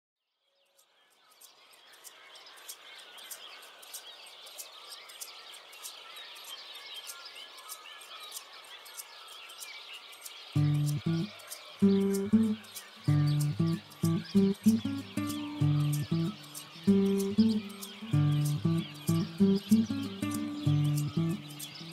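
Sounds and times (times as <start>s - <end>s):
small birds chirping: 0.4s - 21.9s
music with low plucked notes: 10.6s - 21.9s.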